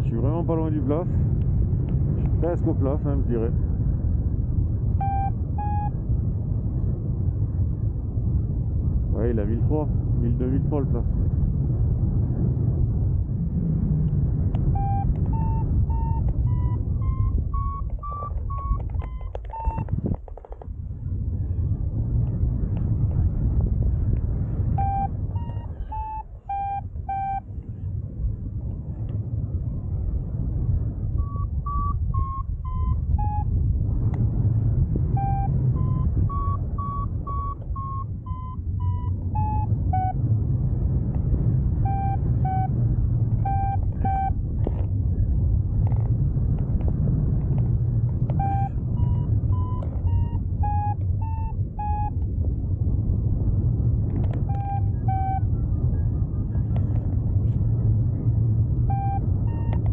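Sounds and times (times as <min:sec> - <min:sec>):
wind rush on microphone: 0:00.0 - 0:59.9
variometer short beeps: 0:05.0 - 0:06.0, 0:14.7 - 0:19.9, 0:24.8 - 0:27.5, 0:31.2 - 0:33.5, 0:35.1 - 0:40.2, 0:41.8 - 0:42.8, 0:43.4 - 0:44.4, 0:48.3 - 0:52.2, 0:54.4 - 0:55.5, 0:58.9 - 0:59.9.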